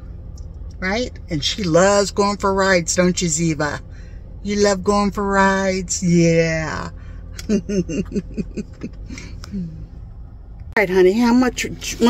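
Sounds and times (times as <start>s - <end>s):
car cabin hum: 0.0s - 12.0s
woman laughing: 7.4s - 9.8s.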